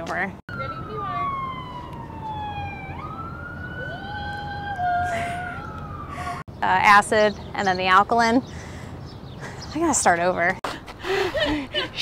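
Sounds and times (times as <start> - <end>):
lower siren tone: 0.5 - 6.4
distant siren wailing: 0.5 - 6.5.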